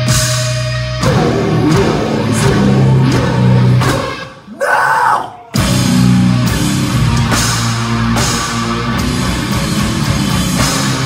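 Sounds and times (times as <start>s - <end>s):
metal band playing loud: 0.0s - 11.0s.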